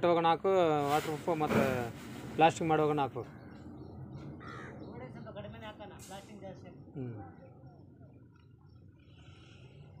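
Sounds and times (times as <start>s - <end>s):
crow cawing: 4.4s - 4.9s.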